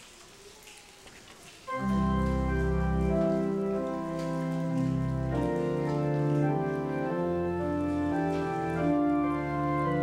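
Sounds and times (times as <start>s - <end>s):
church organ chords: 1.7s - 10.0s.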